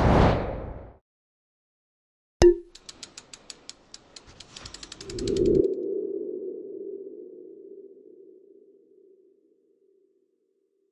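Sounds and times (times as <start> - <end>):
low tone: 2.4 - 2.7
sharp hit with ringing tone: 2.4 - 2.7
quick run of ticks: 2.7 - 5.7.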